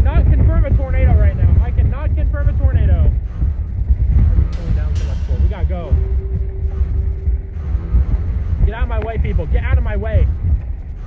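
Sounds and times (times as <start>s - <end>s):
faint steady hum tone: 0.0s - 11.0s
vehicle driving rumble: 0.0s - 11.0s.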